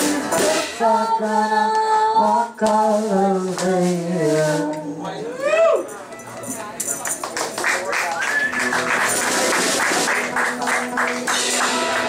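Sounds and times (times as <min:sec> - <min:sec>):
hand percussion beat: 0:06.4 - 0:12.0.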